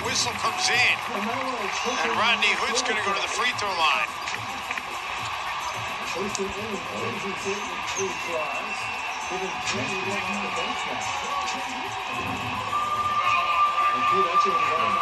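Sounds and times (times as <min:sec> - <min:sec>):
crowd murmur: 0:00.0 - 0:15.0
music playing: 0:00.0 - 0:15.0
voices: 0:00.0 - 0:15.0.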